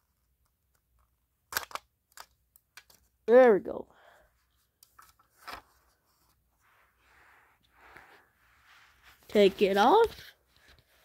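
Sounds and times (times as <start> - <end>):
faint scrapes: 5.9 - 11.0.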